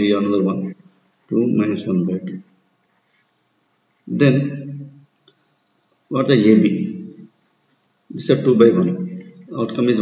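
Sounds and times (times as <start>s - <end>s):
man speaking: 0.0s - 2.5s, 4.1s - 5.0s, 6.1s - 7.3s, 8.1s - 10.0s.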